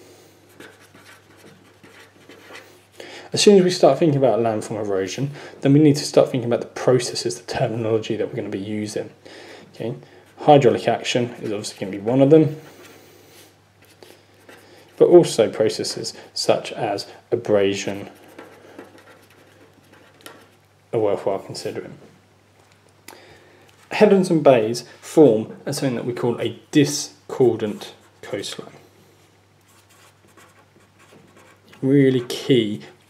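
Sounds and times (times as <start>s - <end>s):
pen scratching on paper: 0.5s - 2.6s, 18.0s - 20.6s, 29.7s - 32.4s.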